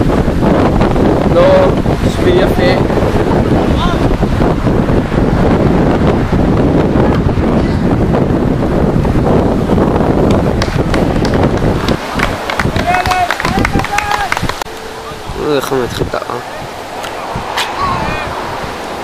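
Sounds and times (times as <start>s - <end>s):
wind buffeting microphone: 0.0s - 19.0s
people shouting: 17.1s - 18.6s.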